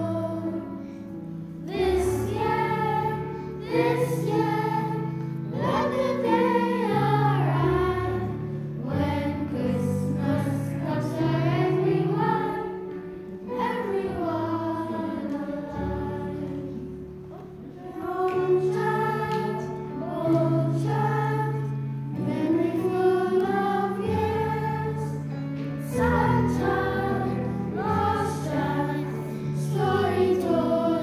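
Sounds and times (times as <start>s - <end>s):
children's choir singing: 0.0s - 31.0s.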